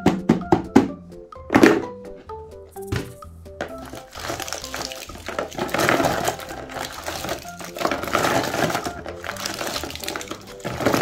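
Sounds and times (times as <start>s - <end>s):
quiet background music: 0.0s - 11.0s
plastic cups rattling in a box: 3.6s - 11.0s.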